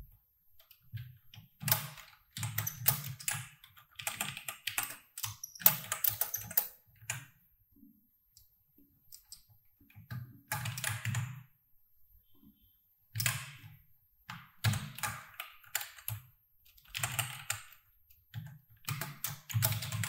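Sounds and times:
typing on computer keyboard: 0.6s - 7.3s, 9.1s - 11.5s, 13.2s - 20.0s.

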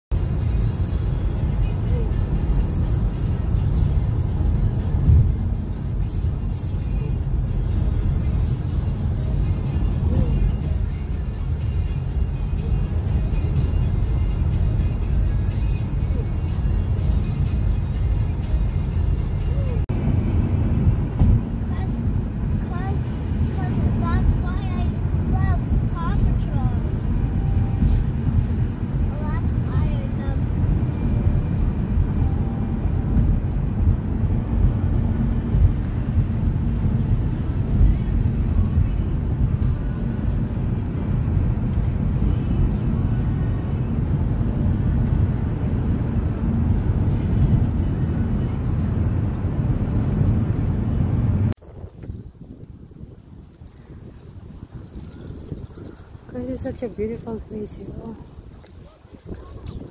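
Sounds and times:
music playing: 0.1s - 51.5s
car driving rumble from inside: 0.1s - 59.9s.

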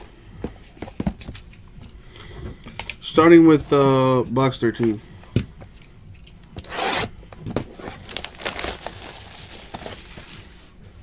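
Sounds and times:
plastic wrap ripping: 7.7s - 10.7s
plastic wrap crinkling: 7.7s - 11.0s.

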